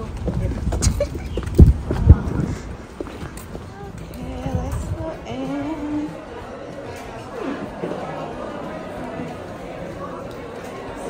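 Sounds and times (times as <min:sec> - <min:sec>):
footsteps on pavement: 0:00.0 - 0:08.1.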